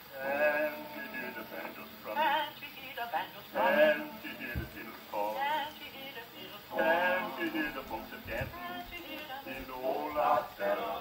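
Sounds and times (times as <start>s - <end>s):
male quartet singing in harmony: 0.0s - 11.0s.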